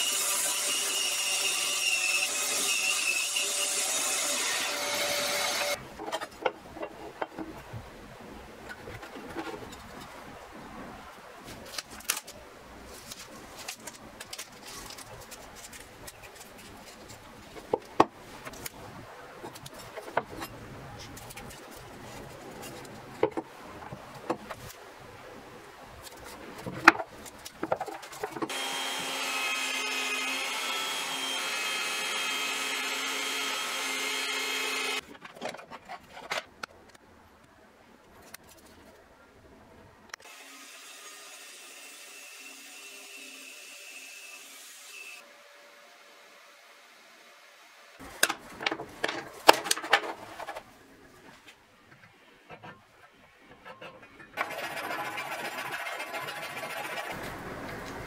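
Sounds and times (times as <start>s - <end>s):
bandsaw cutting wood: 0.0s - 5.8s, 28.5s - 35.0s, 54.4s - 57.2s.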